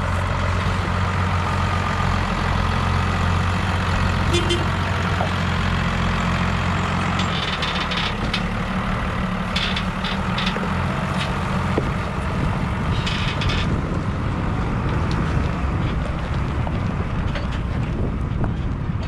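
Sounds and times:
tractor diesel engine idling: 0:00.0 - 0:19.0.

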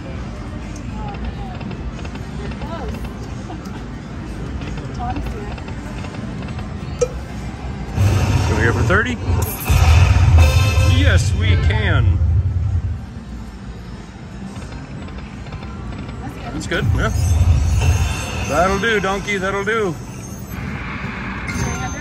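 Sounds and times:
casino background noise: 0:00.0 - 0:09.8, 0:10.6 - 0:22.0
rumble with gliding tones: 0:04.6 - 0:22.0
slot machine chimes: 0:16.7 - 0:20.8.

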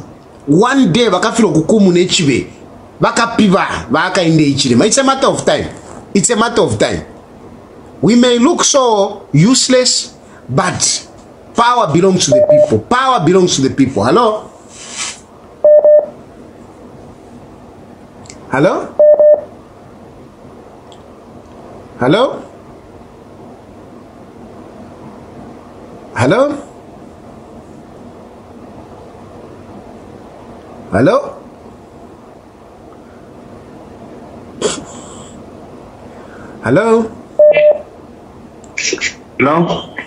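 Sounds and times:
telephone line beep: 0:12.3 - 0:12.8, 0:15.6 - 0:16.1, 0:19.0 - 0:19.5, 0:37.4 - 0:37.8
faint line hiss: 0:14.3 - 0:15.3.

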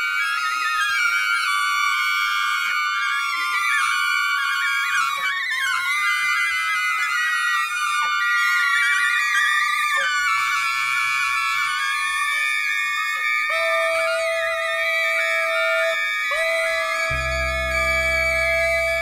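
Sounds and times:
woodwinds holding high notes: 0:00.0 - 0:19.0
lower steady note: 0:17.1 - 0:19.0.

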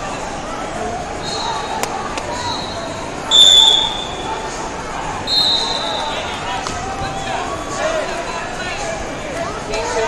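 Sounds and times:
crowd chatter: 0:00.0 - 0:10.0
referee's whistle: 0:01.2 - 0:01.7, 0:02.4 - 0:04.3, 0:05.2 - 0:06.2.

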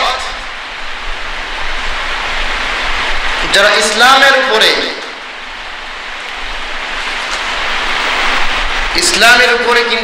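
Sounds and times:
steady hiss of noise: 0:00.0 - 0:10.0.

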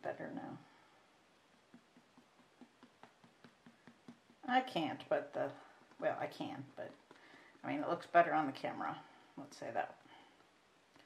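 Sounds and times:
paint sponge tapping: 0:01.2 - 0:08.4.

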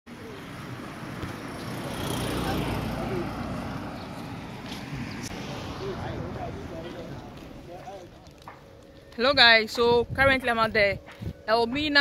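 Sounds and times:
vehicle engine rumble: 0:00.1 - 0:09.2.

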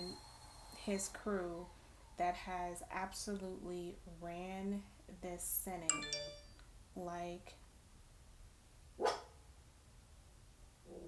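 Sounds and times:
dog barking: 0:09.0 - 0:09.4.

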